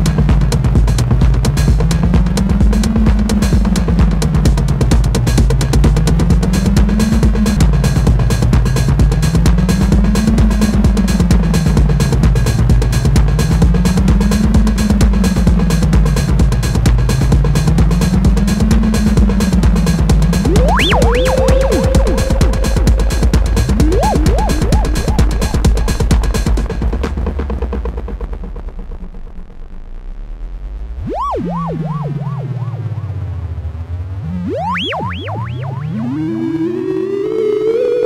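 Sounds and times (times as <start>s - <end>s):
electronic drums with digital delay: 0.0s - 28.9s, 31.0s - 33.5s, 34.2s - 38.0s
sliding bass line: 19.5s - 27.3s, 31.0s - 38.0s
drum-machine beat: 20.1s - 27.2s.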